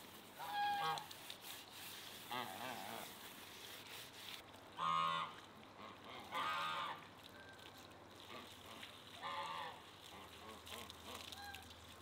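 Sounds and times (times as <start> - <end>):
farmyard animal calling: 0.4 - 1.1, 2.2 - 3.2, 4.8 - 7.0, 8.3 - 11.7.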